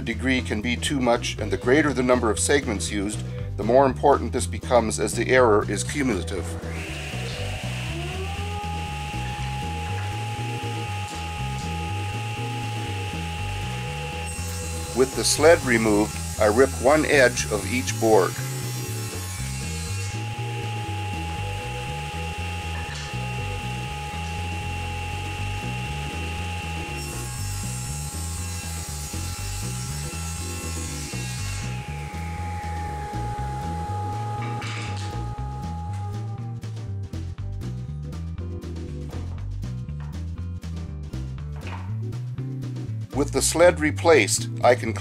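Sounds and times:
background music: 0:00.0 - 0:45.0
table saw cutting a board: 0:06.2 - 0:36.3
saw blade winding down: 0:06.2 - 0:36.5.

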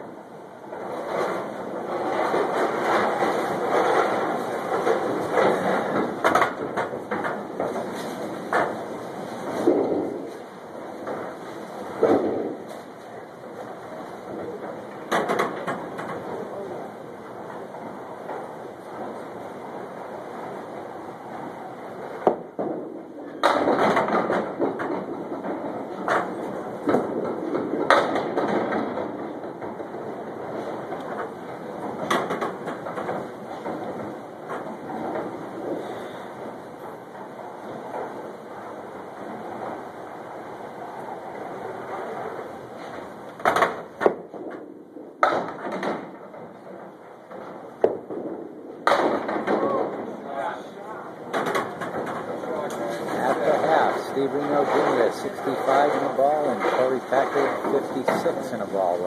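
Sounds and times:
bowling balls rolling on wooden lanes: 0:00.0 - 0:59.0
balls knocking into pins: 0:02.0 - 0:12.8, 0:13.5 - 0:16.5, 0:17.4 - 0:50.2, 0:51.2 - 0:59.0.

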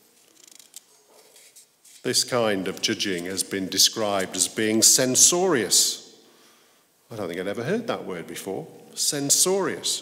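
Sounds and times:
paper rustling: 0:00.1 - 0:02.1.

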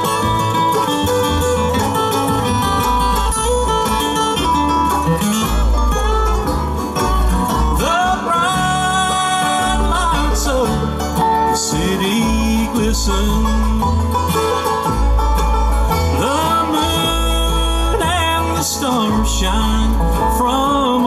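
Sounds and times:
bluegrass band playing: 0:00.0 - 0:21.0
upright bass notes: 0:00.0 - 0:21.0.

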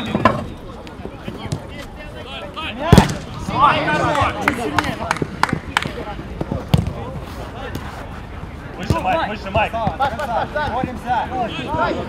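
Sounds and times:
players shouting: 0:02.0 - 0:06.1
football kicks: 0:02.9 - 0:03.5, 0:05.8 - 0:07.9, 0:08.8 - 0:10.0.

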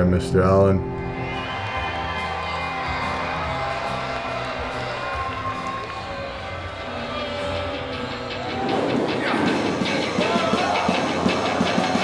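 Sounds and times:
crowd cheering: 0:01.0 - 0:12.0.

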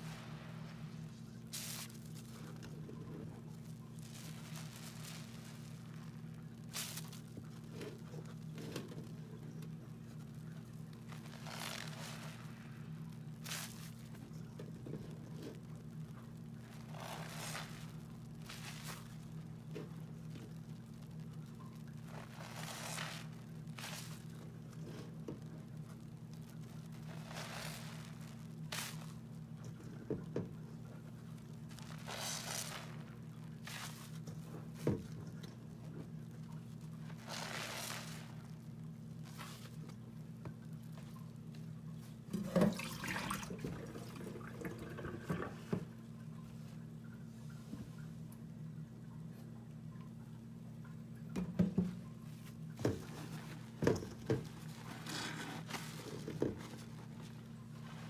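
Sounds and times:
fizzing suds: 0:00.0 - 0:02.6, 0:11.0 - 0:14.2, 0:16.6 - 0:19.4, 0:26.7 - 0:29.2, 0:31.6 - 0:35.4, 0:37.0 - 0:38.6, 0:42.3 - 0:45.9
wet sponge squishing: 0:00.0 - 0:30.3, 0:31.0 - 0:45.9, 0:52.3 - 0:58.0
steady low hum: 0:00.0 - 0:58.0.

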